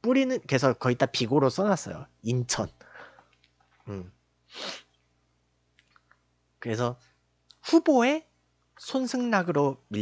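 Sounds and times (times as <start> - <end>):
man humming: 3.9 - 4.1
sharp puff of breath: 4.5 - 4.9.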